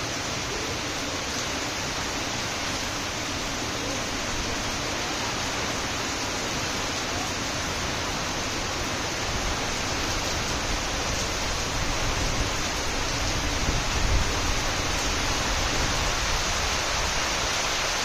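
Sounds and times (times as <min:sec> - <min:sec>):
heavy rain hissing: 0:00.0 - 0:18.0
low wind gusts: 0:00.0 - 0:18.0.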